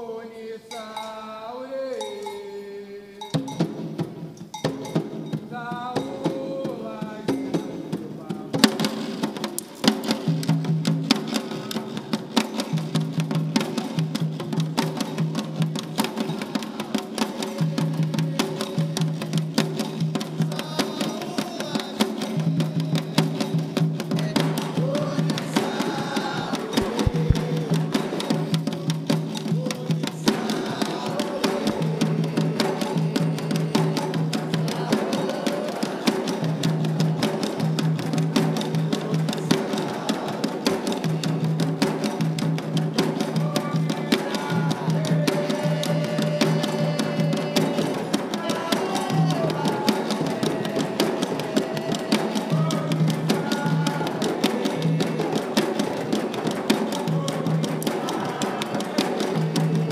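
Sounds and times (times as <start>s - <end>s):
hand drums playing a rhythm: 3.2s - 59.9s.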